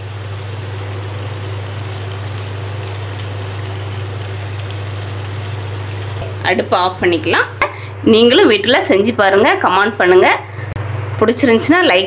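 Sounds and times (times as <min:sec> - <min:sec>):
food sizzling in a pan: 0:00.0 - 0:07.8.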